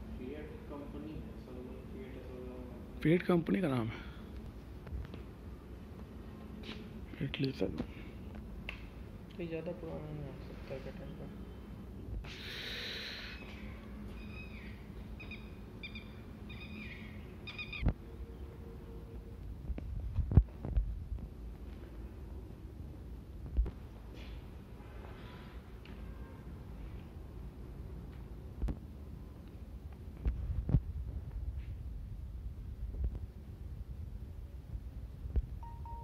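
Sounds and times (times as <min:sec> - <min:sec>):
bird chirping: 0:13.4 - 0:17.9.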